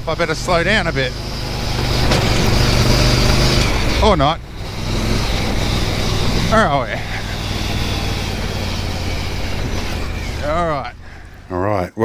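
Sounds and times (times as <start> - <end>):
vehicle engine running: 0.0 - 11.8.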